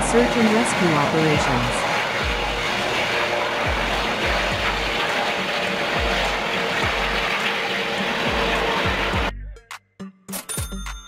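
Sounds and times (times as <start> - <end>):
helicopter flying low: 0.0 - 9.3
music with kick-drum beat: 2.2 - 2.7, 3.6 - 5.0, 6.0 - 7.3, 8.3 - 11.0.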